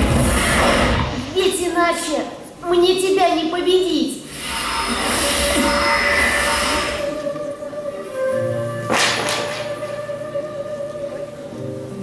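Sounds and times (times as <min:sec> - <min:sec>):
loud whooshing noise: 0:00.0 - 0:01.8, 0:04.2 - 0:07.4
soundtrack music with sustained tones: 0:04.3 - 0:12.0.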